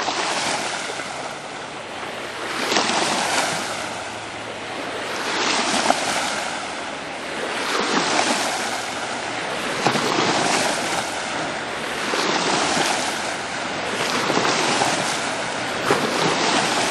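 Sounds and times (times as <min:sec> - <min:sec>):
lake water washing on shore: 0:00.0 - 0:16.9.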